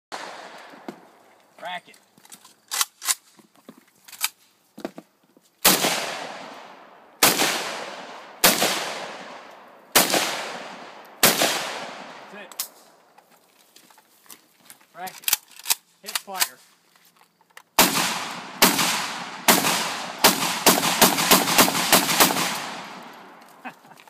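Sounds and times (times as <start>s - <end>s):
rifle shots with echo: 0.1s - 0.7s, 5.6s - 12.8s, 17.8s - 23.4s.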